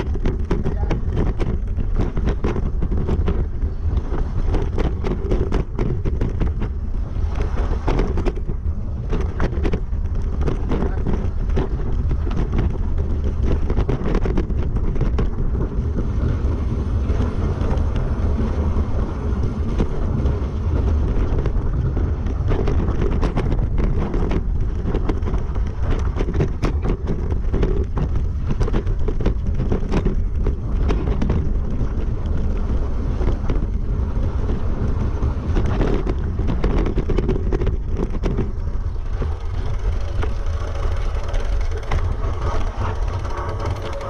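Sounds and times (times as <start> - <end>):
bike rattling over stones: 0.0 - 44.0
tyres rumbling on gravel: 0.0 - 44.0
wind buffeting microphone: 0.0 - 44.0.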